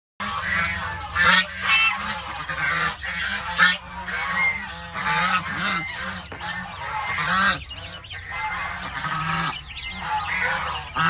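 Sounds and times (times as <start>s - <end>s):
goslings peeping: 0.2s - 11.0s.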